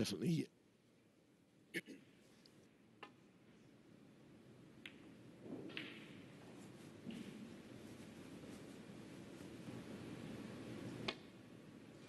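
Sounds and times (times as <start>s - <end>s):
low background hum: 0.0s - 12.0s
snooker balls colliding: 4.8s - 7.4s.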